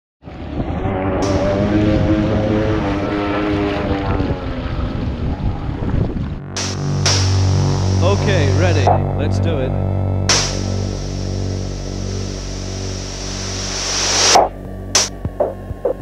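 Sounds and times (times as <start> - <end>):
wind on microphone: 0.4 - 9.1
wavering motor tone: 0.6 - 16.0
steady low hum: 6.3 - 16.0
water rushing and splashing: 6.5 - 8.9, 10.3 - 14.4.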